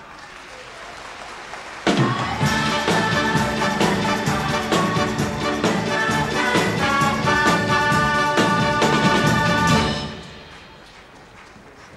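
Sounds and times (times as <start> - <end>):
audience applause: 0.0 - 2.4, 10.3 - 11.9
orchestra playing loud music: 2.4 - 11.0.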